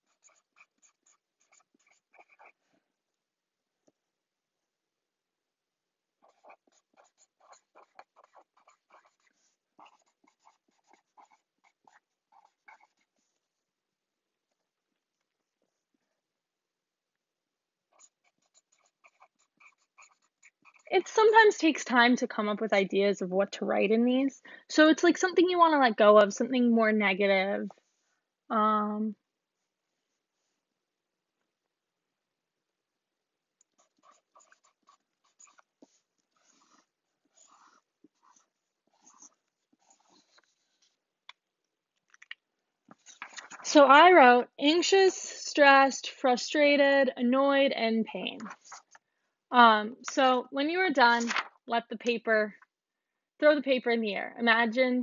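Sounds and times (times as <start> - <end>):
pen writing on paper: 0.0 - 2.7, 6.2 - 13.4, 17.9 - 21.4, 33.7 - 41.0.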